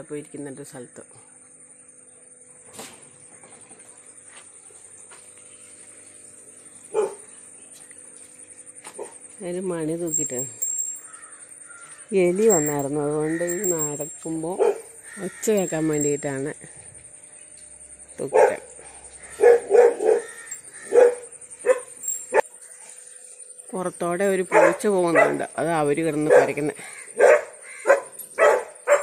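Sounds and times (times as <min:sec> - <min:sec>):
dog bark: 0:06.9 - 0:07.2, 0:18.3 - 0:18.6, 0:19.4 - 0:20.3, 0:20.9 - 0:21.9, 0:24.5 - 0:25.4, 0:26.3 - 0:26.6, 0:27.2 - 0:29.0
faint high-pitched trill: 0:09.4 - 0:14.6, 0:15.2 - 0:16.7.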